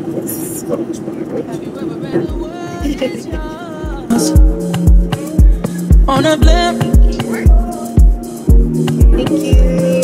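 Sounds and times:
airliner cabin drone: 0:00.0 - 0:10.0
music with deep bass beat: 0:02.3 - 0:10.0.

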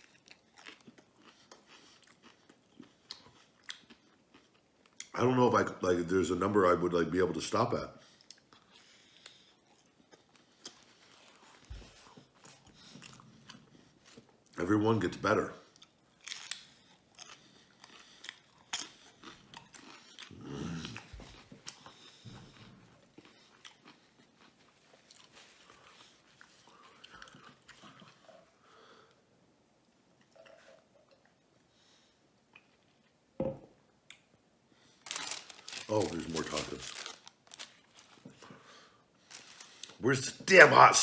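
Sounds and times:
man chewing crunchy food: 0:00.0 - 0:05.2, 0:08.1 - 0:14.6, 0:15.6 - 0:29.2, 0:34.8 - 0:40.0.

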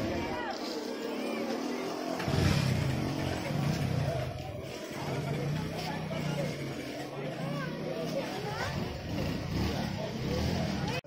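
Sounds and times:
vehicle engine running: 0:02.2 - 0:11.0.

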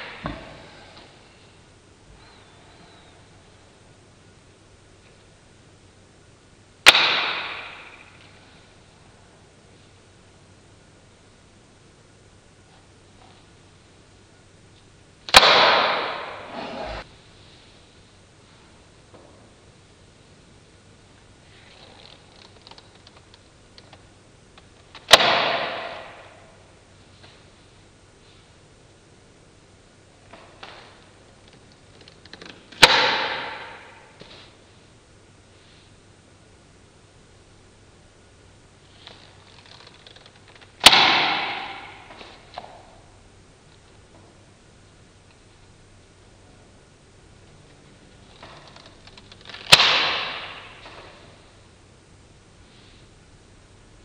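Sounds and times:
balloon snapping: 0:06.8 - 0:08.1, 0:15.3 - 0:16.5, 0:32.8 - 0:34.0, 0:49.5 - 0:51.1
rubber balloon snapping: 0:15.3 - 0:16.4, 0:49.6 - 0:51.0.

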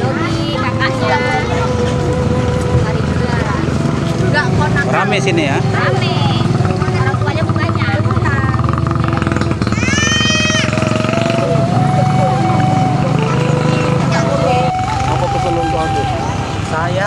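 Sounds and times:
held notes stepping in pitch: 0:10.6 - 0:17.0.

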